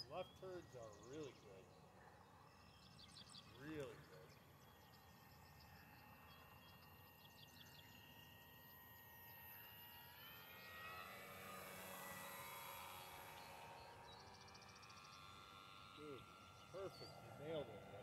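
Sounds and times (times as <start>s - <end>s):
model aircraft propeller whine: 0.0s - 18.0s.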